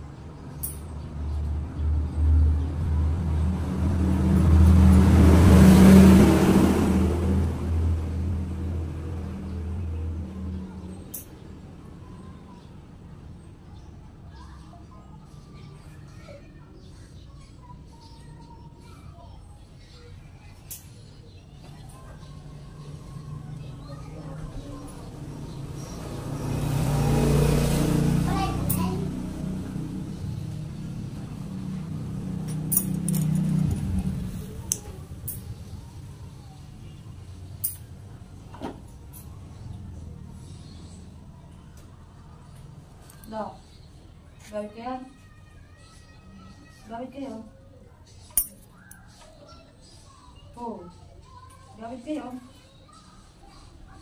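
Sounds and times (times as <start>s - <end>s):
vehicle engine passing by: 0.2s - 11.9s, 22.2s - 44.8s.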